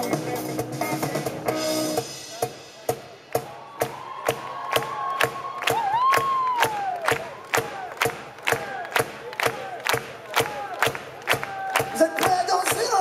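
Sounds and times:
live rock band: 0.0s - 7.2s
crowd noise: 0.0s - 13.0s.

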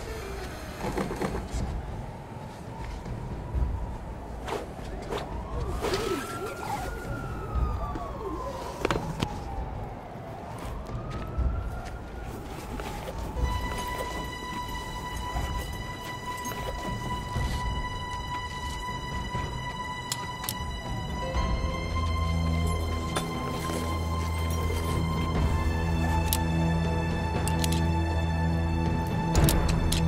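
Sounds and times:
siren wailing: 0.0s - 28.7s
film soundtrack music: 0.0s - 30.0s.

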